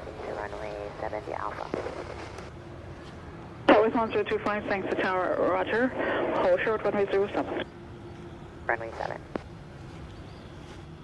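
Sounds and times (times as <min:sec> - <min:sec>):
controller radio transmission: 0:00.0 - 0:02.4, 0:03.7 - 0:07.7, 0:08.7 - 0:09.3
radio hiss and rumble: 0:00.0 - 0:10.0.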